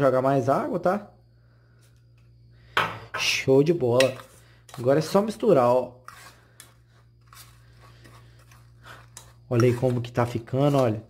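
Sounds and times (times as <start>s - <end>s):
low steady hum: 0.0s - 11.0s
fork scraping and crunching: 5.9s - 11.0s.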